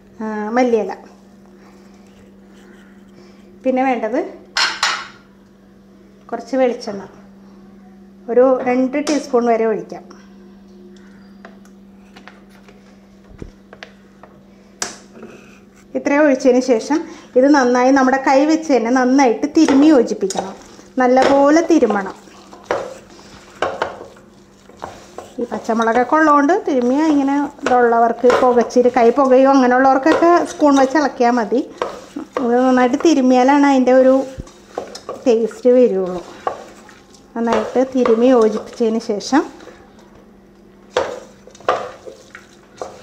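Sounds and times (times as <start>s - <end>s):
steady low hum: 0.0s - 43.0s
woman speaking: 0.2s - 1.2s, 3.6s - 4.4s, 6.3s - 7.2s, 8.3s - 10.2s, 15.9s - 22.3s, 25.4s - 34.4s, 35.2s - 36.4s, 37.4s - 39.6s
hand stirring food in pot: 19.1s - 40.1s, 40.7s - 43.0s.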